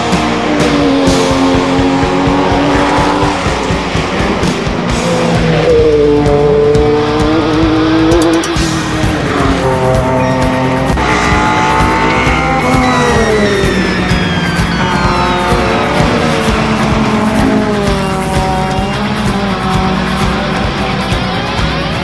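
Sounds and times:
race car engines passing: 0.0s - 22.0s.

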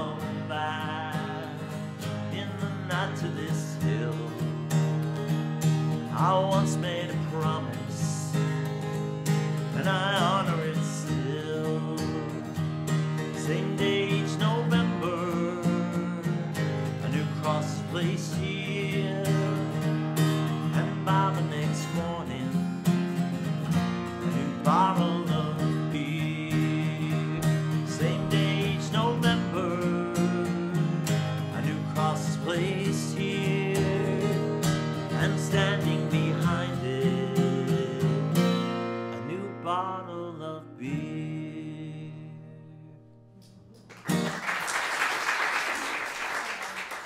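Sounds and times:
solo acoustic guitar: 0.0s - 44.6s.

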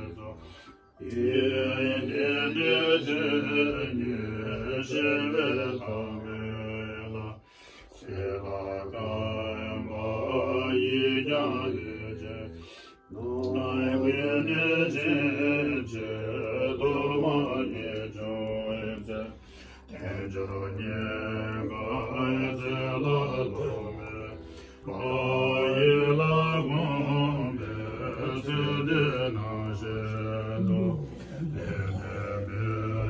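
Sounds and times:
monks chanting in deep voices: 0.0s - 33.0s.

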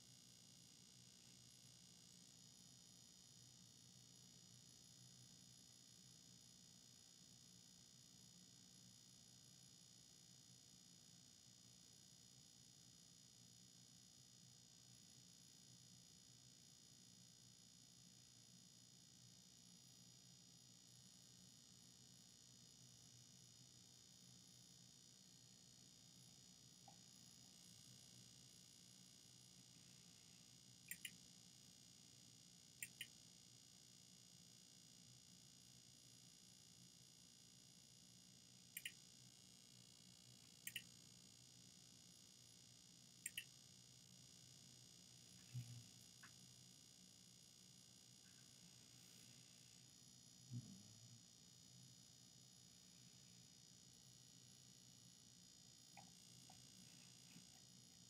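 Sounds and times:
faint hiss and low hum: 0.0s - 58.0s
computer mouse clicks: 30.9s - 31.2s, 32.8s - 33.1s, 38.8s - 39.0s, 40.6s - 40.9s, 43.3s - 43.5s.

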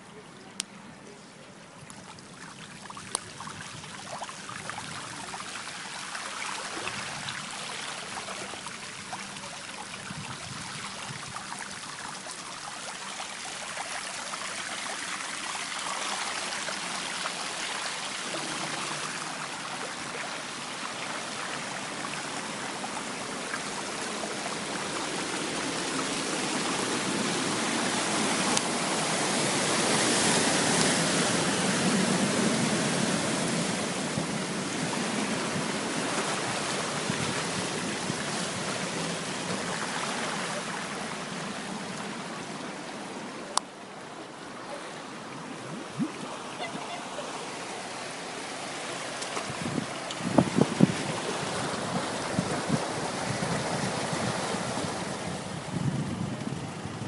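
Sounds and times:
floodwater rushing: 0.0s - 57.0s.

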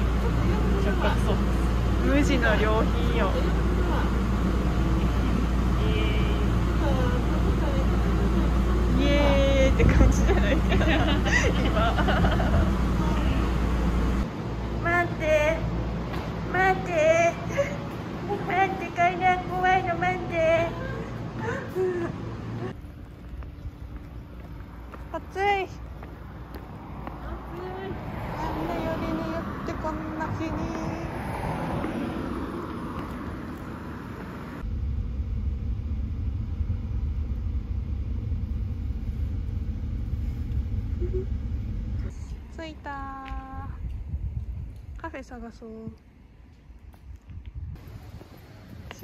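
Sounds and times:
vehicle interior rumble: 0.0s - 45.8s
street traffic: 0.0s - 49.0s
wind on microphone: 27.8s - 46.0s, 46.8s - 49.0s.

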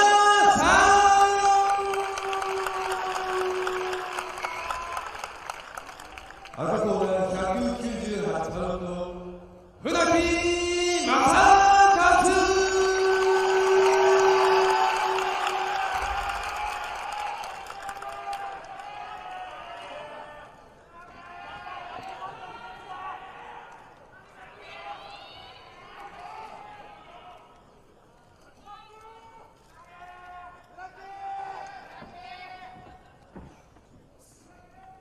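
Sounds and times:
crowd noise: 0.0s - 35.0s.

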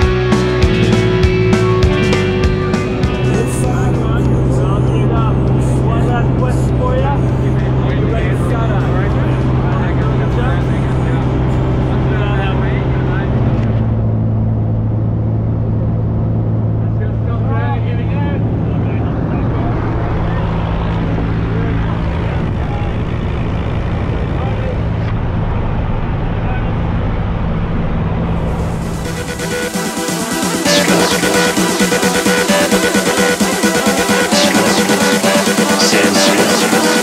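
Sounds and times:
aircraft engine and propeller droning: 0.3s - 37.0s.

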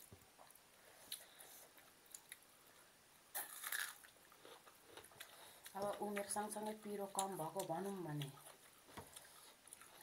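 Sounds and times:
crunchy bite: 3.3s - 4.1s.

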